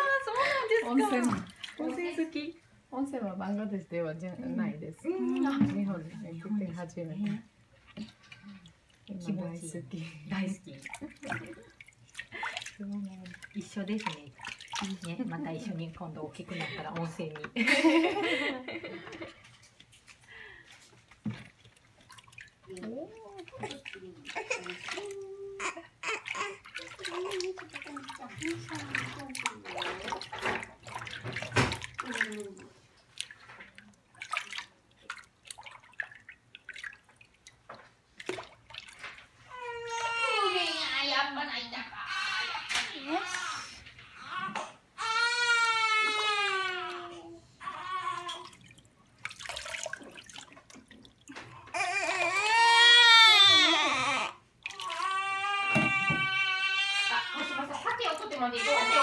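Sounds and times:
bath water splashing: 0.0s - 59.0s
baby crying: 24.3s - 27.3s, 39.5s - 41.0s, 42.0s - 48.5s, 51.6s - 59.0s.

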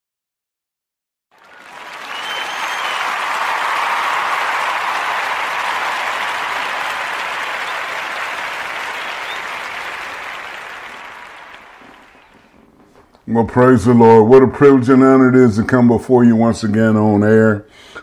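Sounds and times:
crowd applause: 1.3s - 12.6s.

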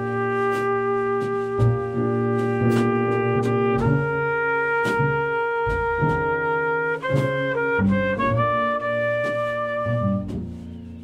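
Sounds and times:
double bass notes: 0.0s - 11.0s
horn long note: 0.0s - 11.0s
slow jazz combo playing: 0.0s - 11.0s.

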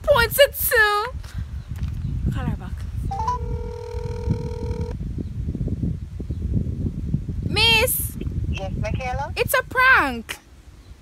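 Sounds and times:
phone call tone: 3.1s - 5.0s
phone rising beeps: 3.1s - 5.0s.

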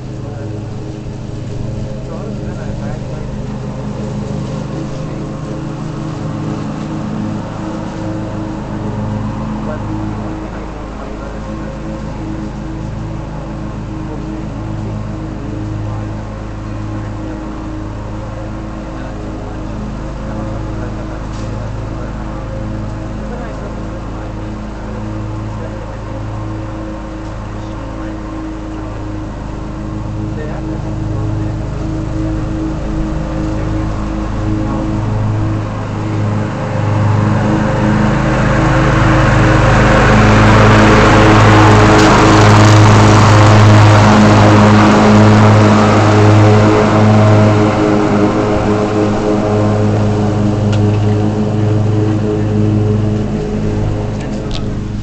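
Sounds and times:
string trimmer humming: 0.0s - 55.0s
rushing noise: 25.4s - 55.0s.

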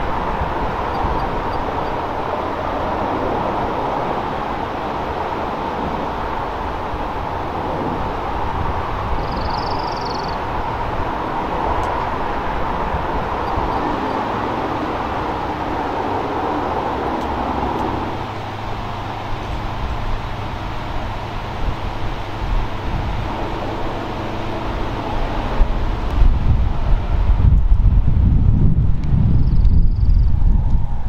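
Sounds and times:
diesel locomotive engine running: 0.0s - 31.0s
heavy low rumble: 0.0s - 31.0s.

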